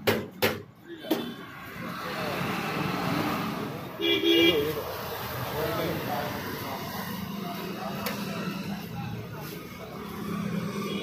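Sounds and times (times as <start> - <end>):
road traffic: 0.0 - 11.0
faint voices: 4.7 - 11.0.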